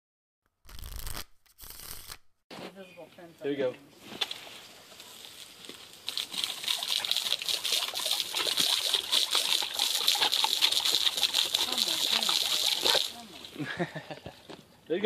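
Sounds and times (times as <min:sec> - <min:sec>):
hose spray splattering: 0:05.0 - 0:13.8.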